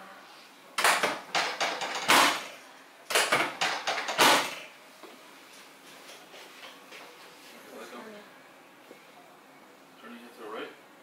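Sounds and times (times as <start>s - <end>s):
sharp knocks and clacks: 0.8s - 2.5s, 3.1s - 4.7s.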